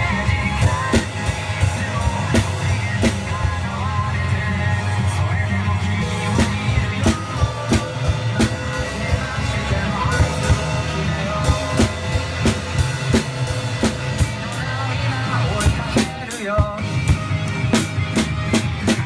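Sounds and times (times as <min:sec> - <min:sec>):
acoustic drum kit playing: 0:00.0 - 0:19.0
music backing track: 0:00.0 - 0:19.0.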